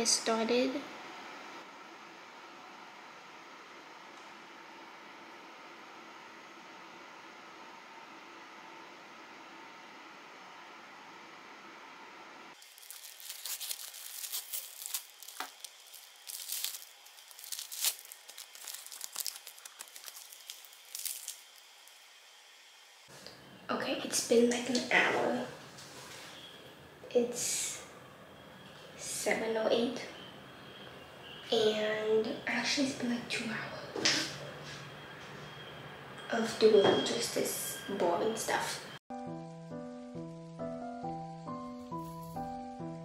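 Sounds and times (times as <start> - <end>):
plastic wrapper crinkling: 12.6 - 22.0.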